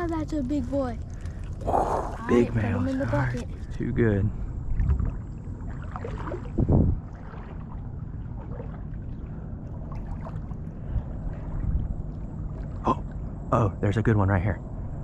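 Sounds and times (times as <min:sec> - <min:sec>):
water sloshing around wading legs: 0:00.0 - 0:13.4
low rumble on microphone: 0:00.0 - 0:15.0.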